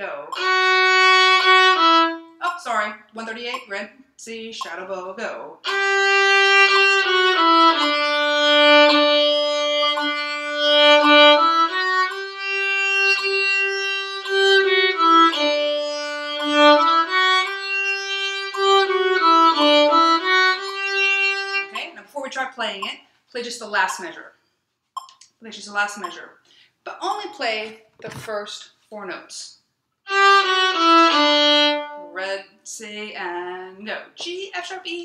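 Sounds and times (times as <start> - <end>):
solo violin exercise: 0.0 - 3.7, 5.6 - 22.8, 30.0 - 32.3.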